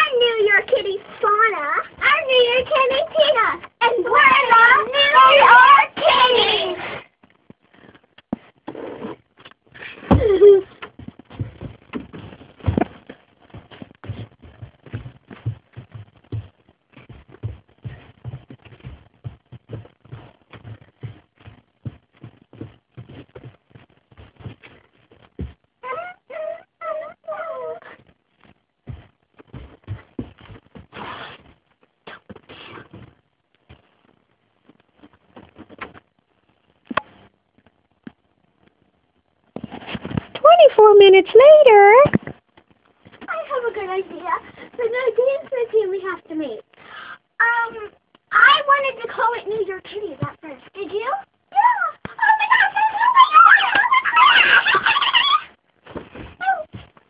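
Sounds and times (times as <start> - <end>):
faint knocks and rustles: 7.0 - 25.8, 27.9 - 38.8, 39.4 - 40.4, 54.6 - 57.0
high-pitched young voices: 40.4 - 42.1, 51.6 - 55.5.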